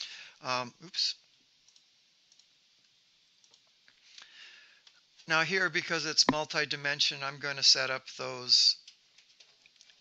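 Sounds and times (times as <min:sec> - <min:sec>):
computer mouse clicks: 0:01.7 - 0:02.5.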